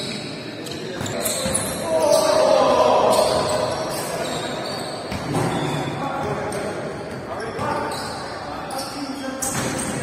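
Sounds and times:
players calling out: 0.7s - 4.9s.

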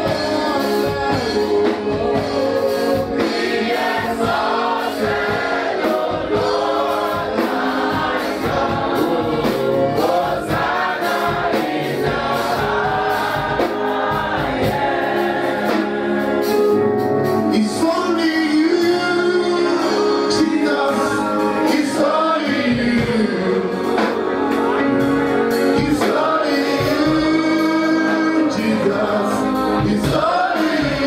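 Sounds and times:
congregation singing: 0.0s - 31.0s
instrumental accompaniment: 0.0s - 31.0s.

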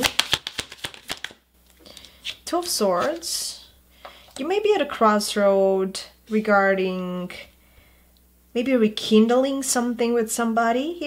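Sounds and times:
cards being shuffled: 0.0s - 3.4s.

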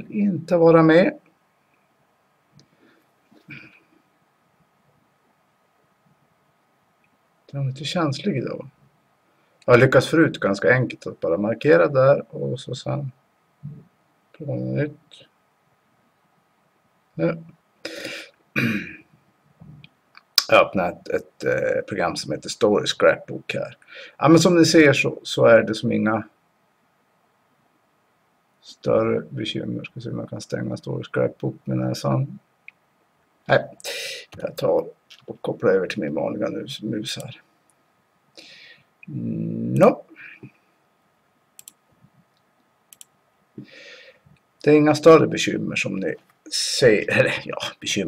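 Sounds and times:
man clearing his throat: 18.0s - 19.1s
computer mouse clicks: 41.6s - 41.8s, 42.9s - 43.2s.

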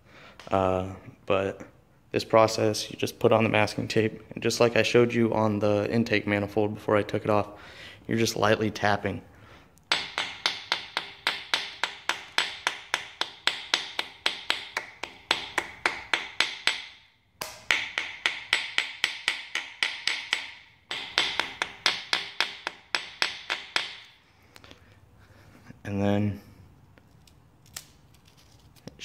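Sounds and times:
hammer tapping on metal: 9.9s - 24.1s.

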